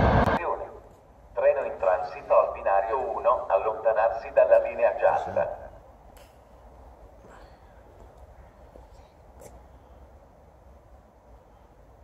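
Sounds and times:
loudspeaker announcement voice: 0.0 - 5.8.

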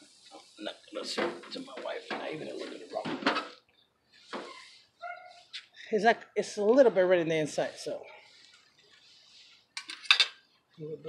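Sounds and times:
metal utensils clinking on grill: 9.8 - 10.4.

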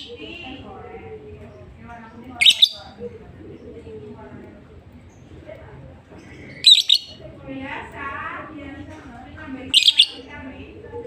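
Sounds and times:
lovebird chirping: 2.4 - 3.0, 6.5 - 7.2, 9.7 - 10.2.

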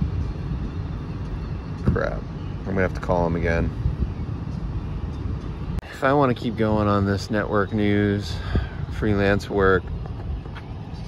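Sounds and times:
low outdoor rumble: 0.0 - 11.0.

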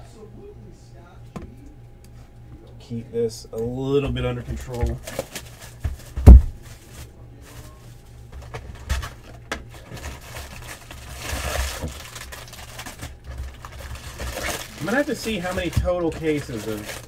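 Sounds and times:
cardboard rustling: 4.4 - 17.0
box thump: 5.8 - 6.6.

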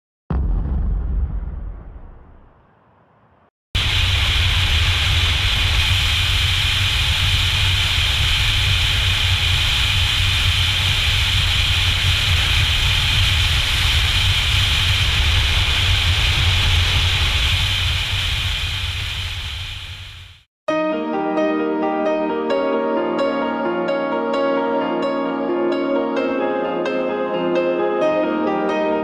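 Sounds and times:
wind rush: 0.3 - 20.4.

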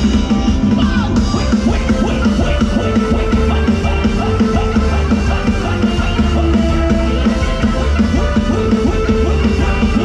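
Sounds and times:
live band dance music: 0.0 - 10.0.

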